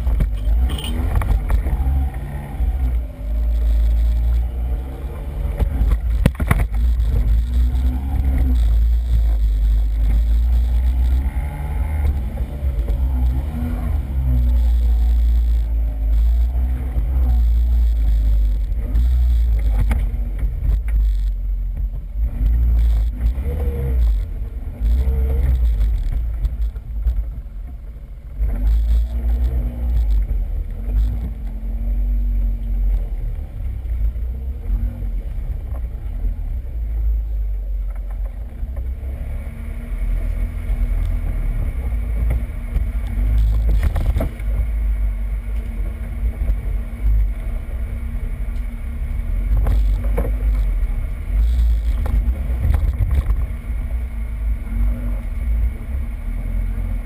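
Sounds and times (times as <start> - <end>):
atv engine revving: 0.0 - 57.0
wind rumble on microphone: 0.0 - 57.0.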